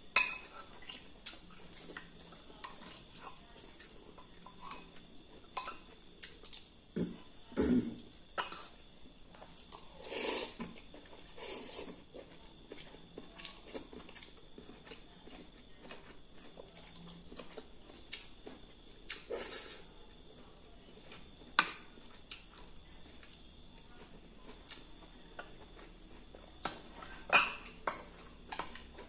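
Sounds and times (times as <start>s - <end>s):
metal spoon clinking ceramic bowl: 0.2s - 0.5s, 27.3s - 28.1s
eating noises: 0.5s - 20.4s.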